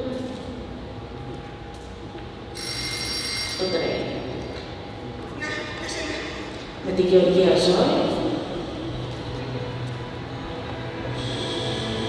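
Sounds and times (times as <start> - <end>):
telephone ringing: 2.6 - 3.9.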